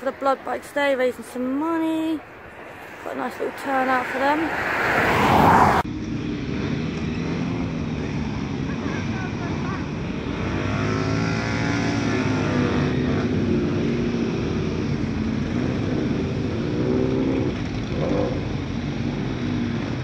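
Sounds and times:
motorcycle engine revving: 2.4 - 20.0.

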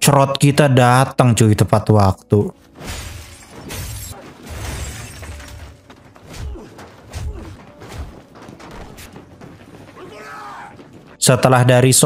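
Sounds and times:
glass shattering: 2.8 - 8.2
sharp crashes and breaking: 2.8 - 9.3.

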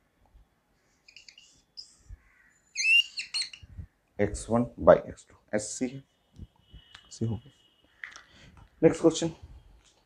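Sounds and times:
whiteboard marker squeaking: 2.8 - 3.8.

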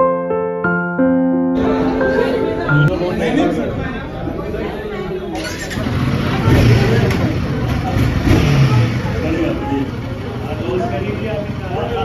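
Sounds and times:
people talking: 1.6 - 12.0
motorcycle engine running: 5.4 - 12.0.

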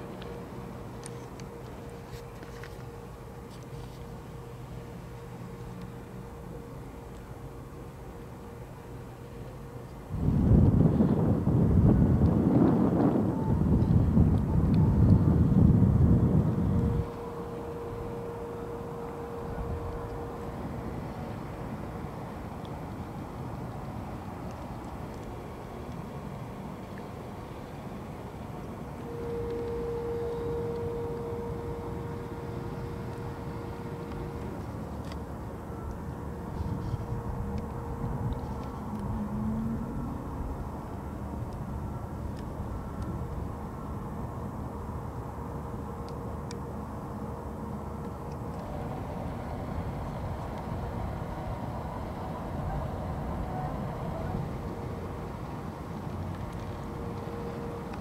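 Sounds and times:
low rumble of vehicle engines: 0.0 - 58.0
thin steady whine: 0.0 - 58.0
brief wavering tone: 29.0 - 34.6.

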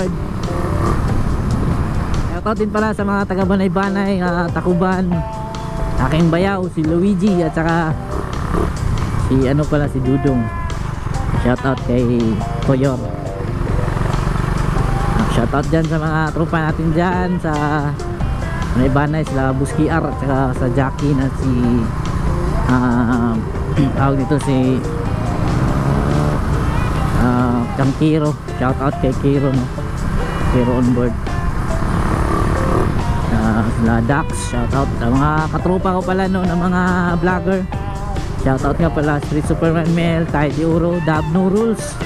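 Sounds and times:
background music with held notes: 0.0 - 42.0
motorcycle engine cruising: 0.0 - 42.0.

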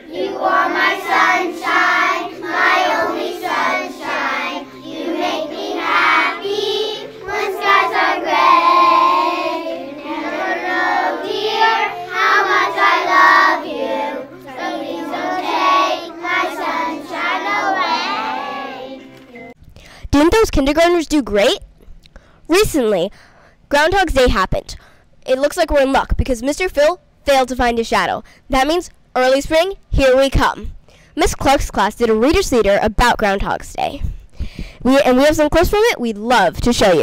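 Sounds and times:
children singing together: 0.0 - 19.1.

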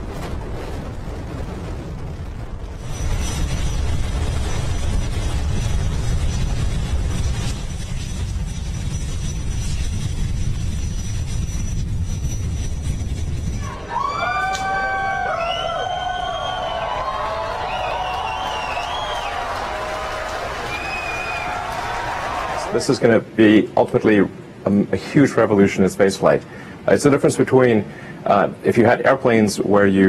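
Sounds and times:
rocket engines roaring: 0.0 - 30.0
crowd cheering and whooping: 13.6 - 22.9.

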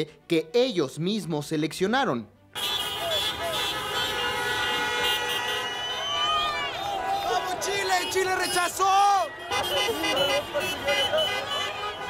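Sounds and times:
street noise: 2.3 - 12.0
car horns honking: 2.5 - 12.0.

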